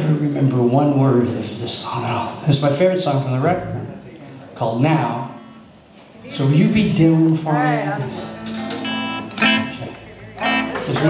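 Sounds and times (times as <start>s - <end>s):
guitar chords strummed: 8.0s - 11.0s.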